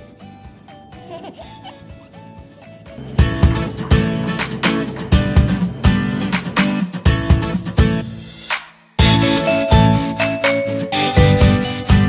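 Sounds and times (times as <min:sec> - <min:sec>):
simple background music: 0:00.0 - 0:12.0
baby giggling: 0:00.9 - 0:03.4.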